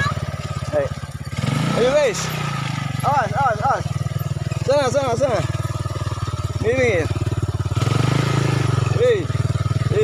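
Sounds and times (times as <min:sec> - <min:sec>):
quad bike engine revving: 0:00.0 - 0:10.0.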